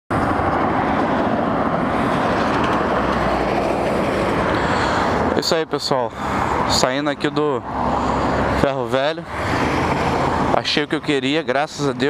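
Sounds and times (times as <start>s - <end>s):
highway traffic passing: 0.1s - 12.0s.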